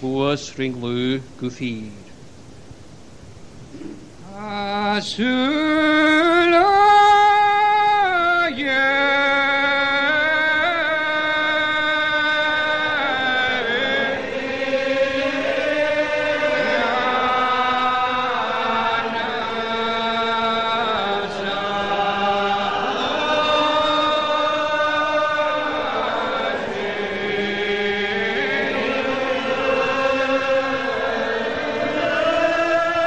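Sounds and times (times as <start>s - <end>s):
congregation singing unaccompanied psalm: 3.7s - 33.0s.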